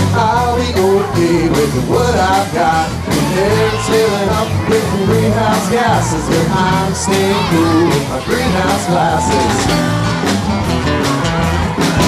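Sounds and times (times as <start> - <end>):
bass guitar: 0.0 - 12.0
drum kit steady beat: 0.0 - 12.0
strummed guitars: 0.0 - 12.0.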